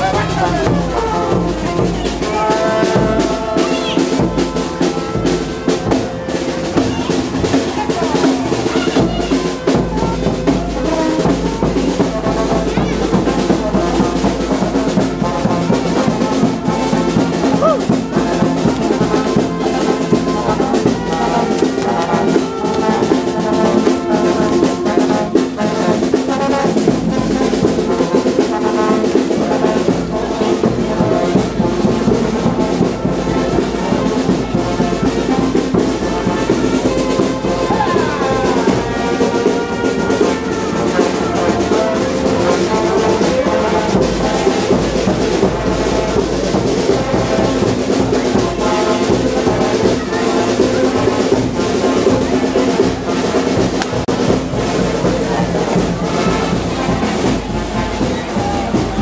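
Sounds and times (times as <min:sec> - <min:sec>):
brass band music: 0:00.0 - 0:59.0.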